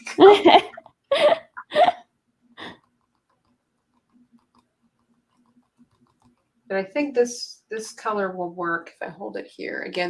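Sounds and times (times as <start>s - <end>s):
woman laughing: 0.0s - 2.0s.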